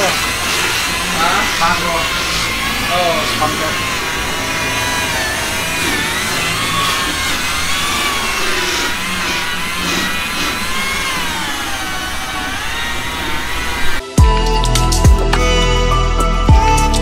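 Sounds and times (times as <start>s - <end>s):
rotary polisher motor whine: 0.0s - 14.2s.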